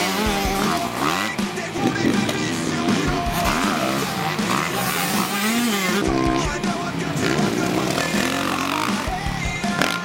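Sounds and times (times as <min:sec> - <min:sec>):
backing music: 0:00.0 - 0:10.0
motorbike engines revving: 0:00.0 - 0:10.0.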